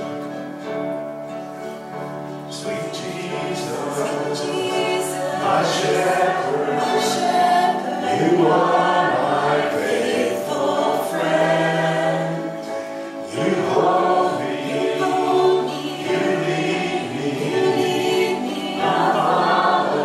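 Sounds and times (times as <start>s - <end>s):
acoustic guitar: 0.0s - 20.0s
worship band singing: 2.3s - 20.0s.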